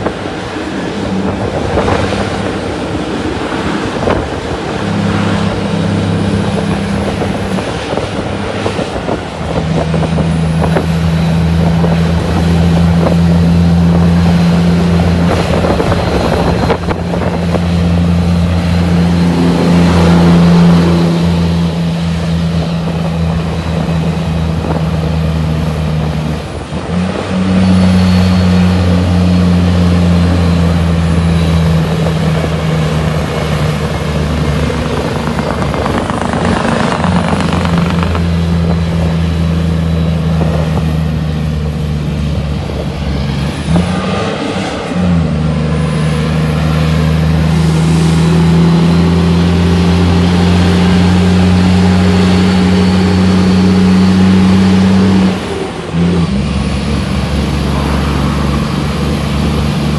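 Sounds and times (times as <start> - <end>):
heavy diesel truck engine drone: 0.0 - 59.9.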